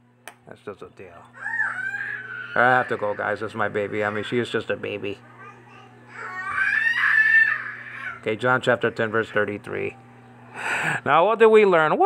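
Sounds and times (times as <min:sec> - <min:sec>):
high-pitched screeching cry: 0:01.4 - 0:04.3, 0:06.1 - 0:08.2.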